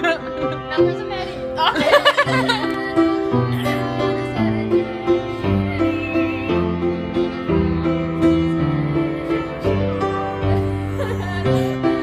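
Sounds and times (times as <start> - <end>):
upright piano playing chords: 0.0 - 12.0.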